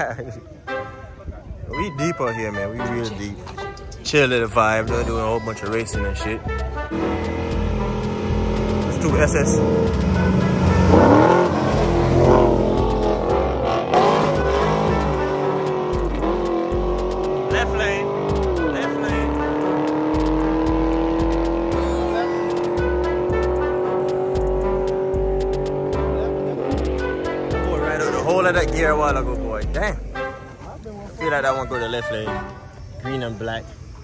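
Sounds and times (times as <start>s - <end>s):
music with pulsing bass beat: 4.7s - 30.4s
racing car engines at full throttle: 6.9s - 29.8s.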